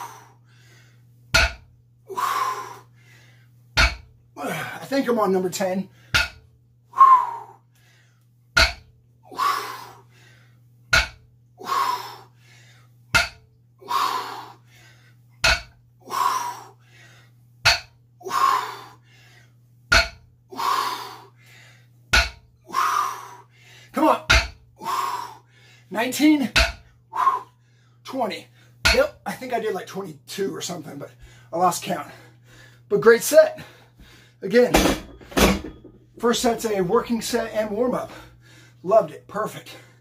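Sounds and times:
steady low hum: 0.0 - 40.0
weight plates knocking down: 34.7 - 36.0.

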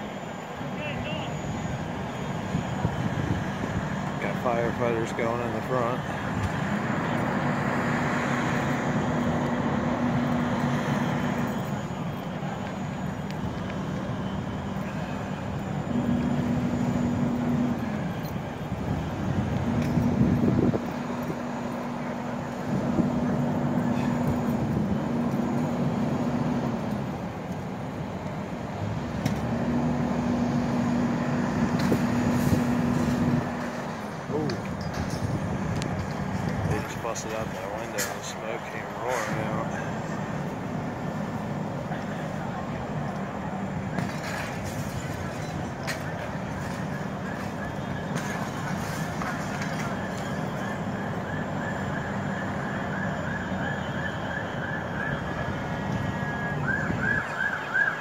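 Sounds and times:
constant rumble: 0.0 - 57.8
vehicle engine hum: 0.0 - 58.0
background voices: 36.4 - 40.5.

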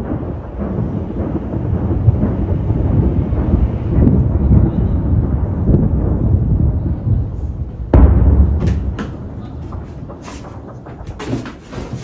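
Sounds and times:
distant artillery shelling rumble: 0.0 - 12.0.

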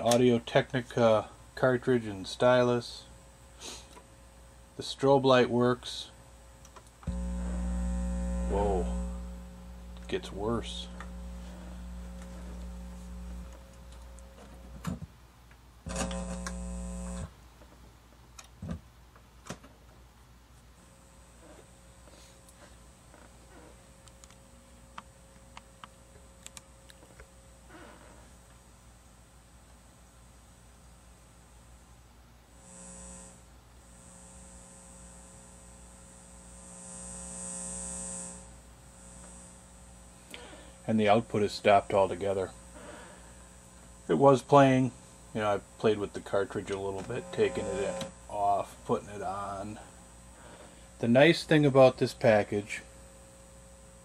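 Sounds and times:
turntable mains hum: 0.0 - 54.0
hiss: 3.6 - 3.9
clicks: 6.6 - 15.0, 15.9 - 17.3.

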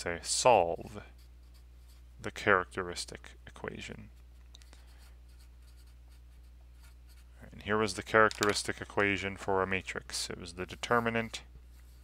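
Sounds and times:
steady low hum: 0.0 - 12.0
marker scratching on paper: 0.8 - 2.1, 4.1 - 7.4, 10.6 - 12.0.

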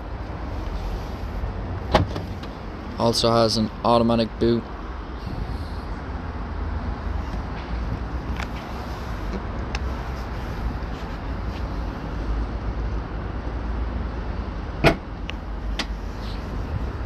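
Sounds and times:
loud latching thud: 1.9 - 2.3, 14.8 - 15.1
powered tailgate closing: 14.8 - 15.1.

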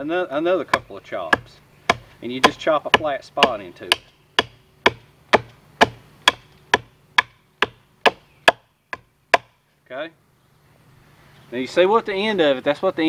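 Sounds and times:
machete chopping wood: 0.7 - 9.6.

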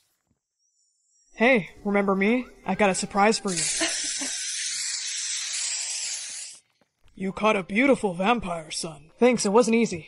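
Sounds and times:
aerosol spray hiss: 3.5 - 6.6.

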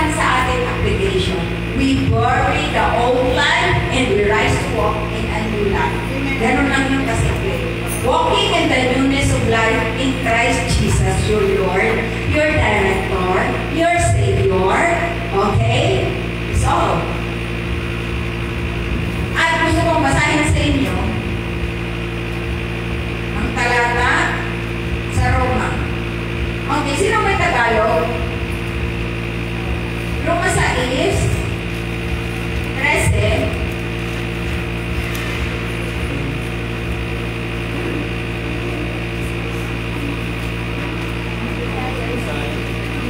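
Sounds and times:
electrical mains hum: 0.0 - 43.0.

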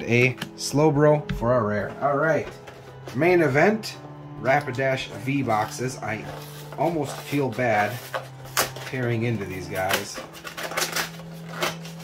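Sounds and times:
wrapping and cardboard crackling: 5.1 - 12.0.

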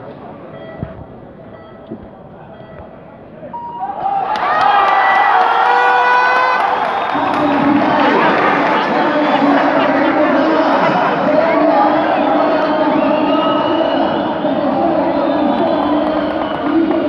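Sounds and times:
crowd cheering and shouting: 3.7 - 17.0.

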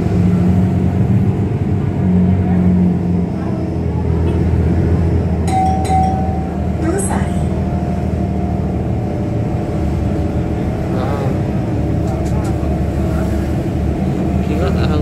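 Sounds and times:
bus engine and road drone: 0.0 - 15.0.

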